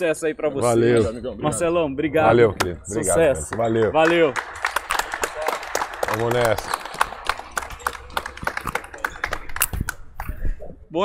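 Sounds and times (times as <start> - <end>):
people clapping: 2.6 - 10.6.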